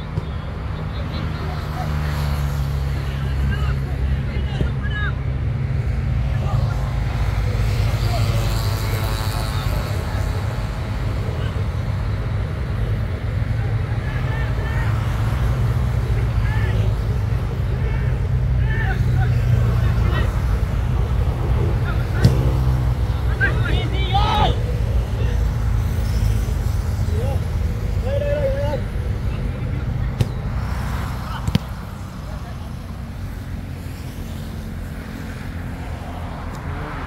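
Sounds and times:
players shouting: 6.2s - 21.2s, 21.8s - 32.5s
sharp thud: 22.2s - 22.8s.

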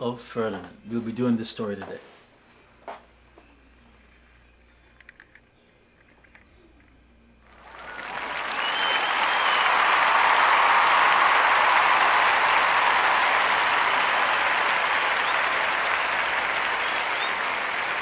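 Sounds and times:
crowd applauding: 7.5s - 18.0s
short whistle: 8.5s - 9.8s.

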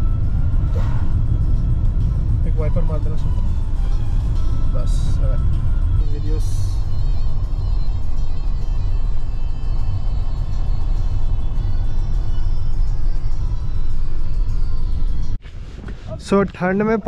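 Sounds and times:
music playing: 0.0s - 15.4s
car cabin road and engine rumble: 0.0s - 17.0s.

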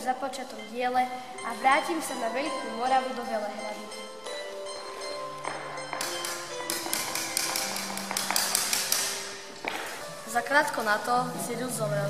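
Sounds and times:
background music with held notes: 0.0s - 12.0s
small hammer tapping a box: 6.0s - 9.8s.

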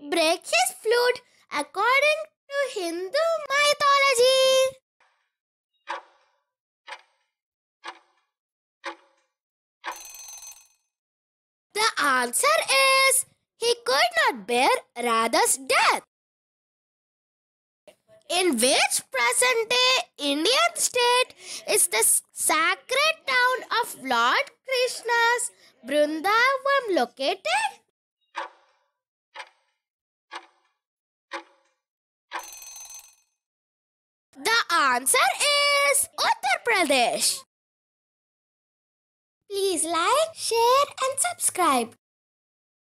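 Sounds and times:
person speaking: 18.3s - 27.8s, 34.4s - 37.4s, 39.5s - 41.9s.

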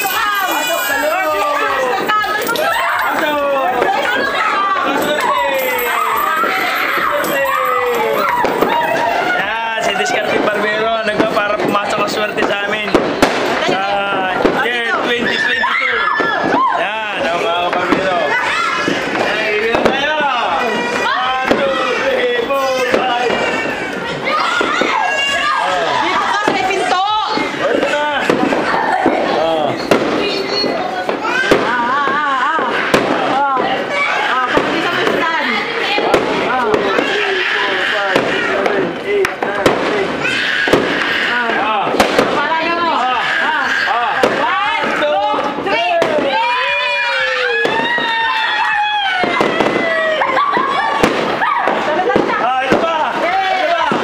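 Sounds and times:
excited chatter of voices: 0.0s - 54.0s
firecrackers popping: 0.0s - 54.0s.

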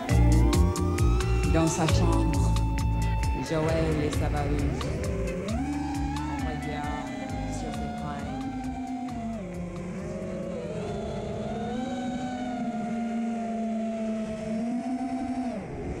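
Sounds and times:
drone motors whining: 0.0s - 16.0s.

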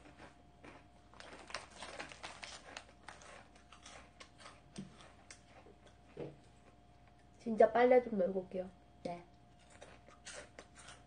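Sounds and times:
crunchy snacks being chewed: 0.0s - 7.2s, 9.5s - 11.0s
plastic wrapper crinkling: 1.1s - 3.6s.

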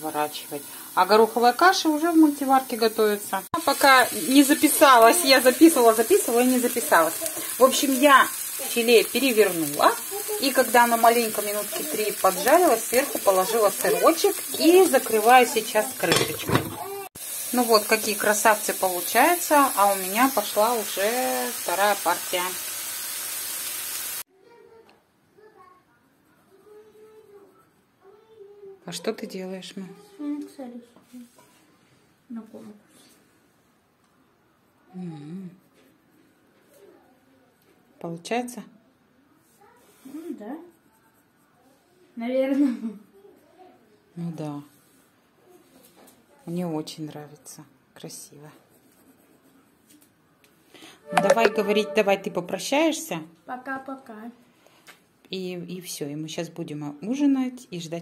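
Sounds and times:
meat sizzling in a frying pan: 0.0s - 24.3s
pencil scratching on paper: 48.6s - 49.8s.

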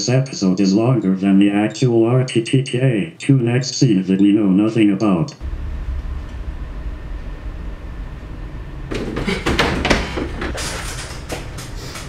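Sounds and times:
steady low rumble: 5.4s - 12.0s
wooden chair creaking and knocking: 8.9s - 12.0s.

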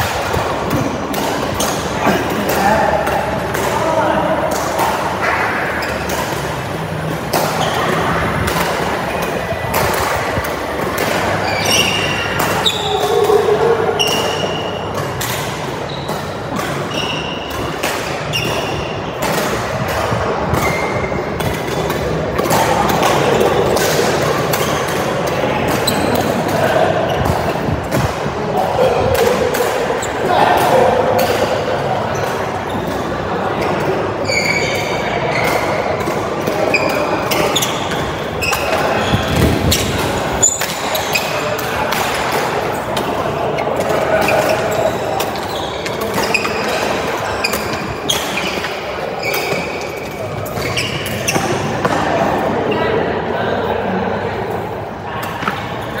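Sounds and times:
rackets hitting shuttlecock: 0.0s - 52.4s
shoes squeaking on court: 5.2s - 28.2s, 32.1s - 52.0s.

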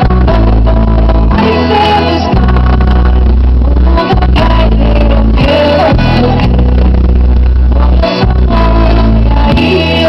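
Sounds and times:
distorted heavy bass: 0.0s - 10.0s.

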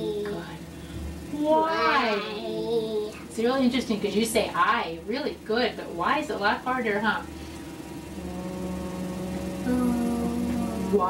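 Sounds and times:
voices holding an oo sound: 0.0s - 3.7s, 6.6s - 11.0s.

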